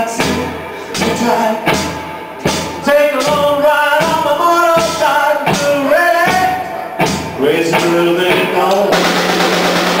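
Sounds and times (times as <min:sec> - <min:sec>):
person singing: 0:00.0 - 0:09.4
live rock band: 0:00.0 - 0:10.0.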